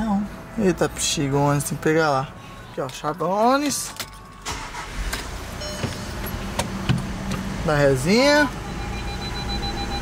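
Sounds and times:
diesel engine starting and idling: 0:04.2 - 0:10.0.

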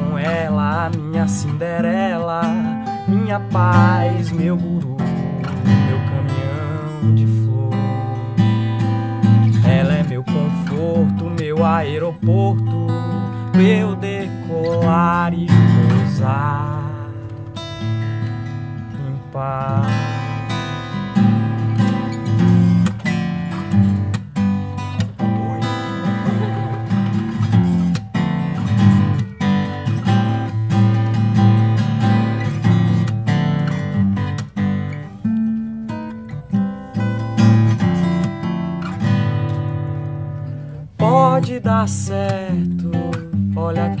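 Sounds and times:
acoustic guitar strumming: 0:00.0 - 0:44.0.

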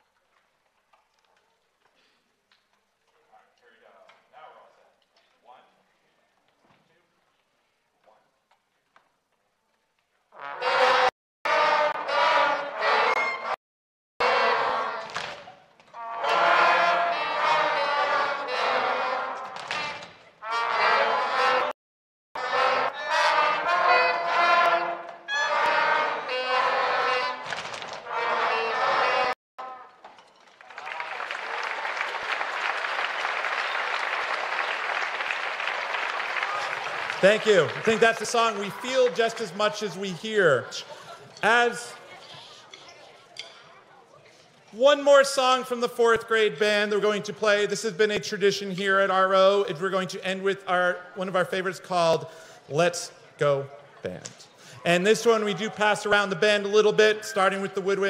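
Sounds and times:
audience applause: 0:30.4 - 0:39.8.

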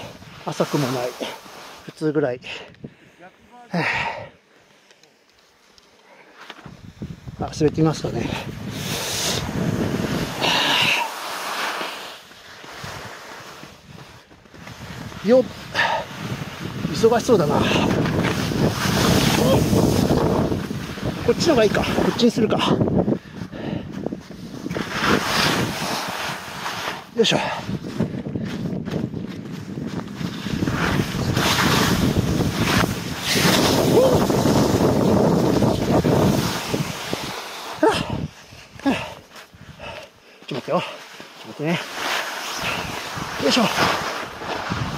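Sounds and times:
skis scraping through snow: 0:00.0 - 0:02.3, 0:04.6 - 0:39.8, 0:40.4 - 0:44.9
wind noise on microphone: 0:06.6 - 0:11.1, 0:12.7 - 0:40.0, 0:42.5 - 0:44.9.

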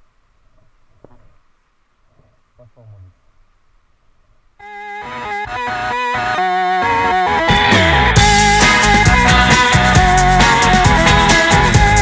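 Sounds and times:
rock guitar picked notes: 0:04.6 - 0:12.0.

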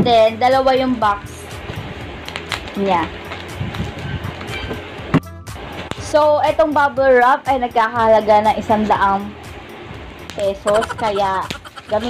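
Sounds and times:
background music: 0:00.0 - 0:12.0
plastic crinkling: 0:02.2 - 0:04.5
scissors cutting bubble wrap: 0:02.2 - 0:04.6.

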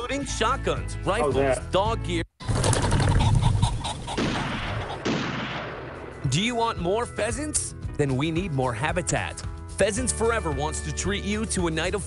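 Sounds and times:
pheasant cackling: 0:02.5 - 0:05.1.

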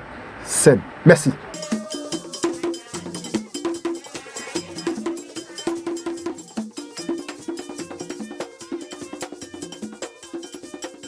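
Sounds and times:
saxophone short repeated notes: 0:01.4 - 0:03.4
drums: 0:01.4 - 0:11.0
metal bell strokes: 0:01.5 - 0:09.0.

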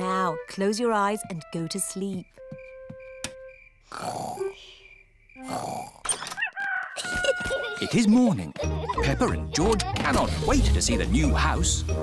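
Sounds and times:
cartoon piglets snoring: 0:03.9 - 0:04.6, 0:05.4 - 0:06.0.

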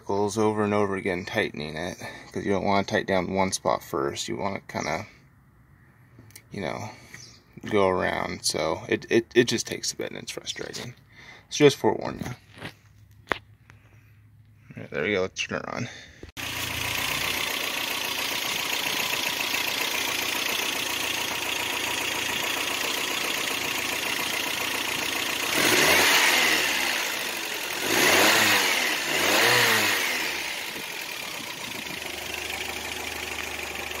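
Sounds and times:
car engine idling: 0:16.4 - 0:34.0
engine revving: 0:16.4 - 0:34.0.

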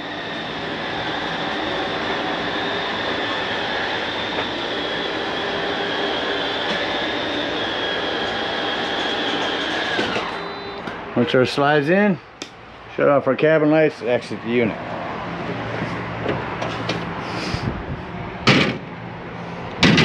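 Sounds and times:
electric motor whining: 0:00.0 - 0:11.2.

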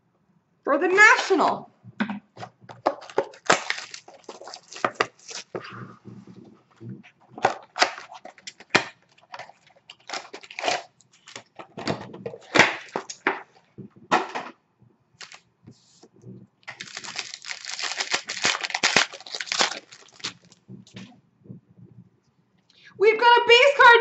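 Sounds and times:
plastic wrap crinkling and tearing: 0:02.8 - 0:05.6, 0:07.3 - 0:13.2, 0:15.2 - 0:15.4, 0:16.6 - 0:21.0.

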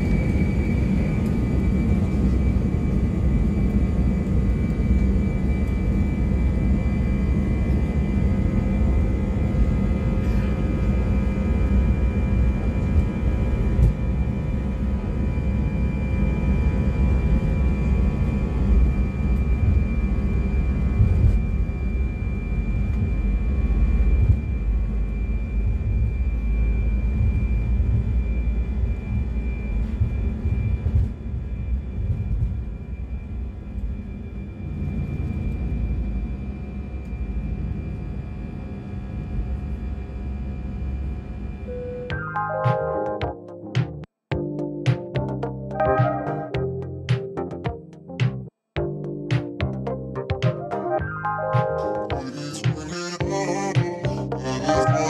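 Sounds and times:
jet engines whining: 0:00.0 - 0:37.6.

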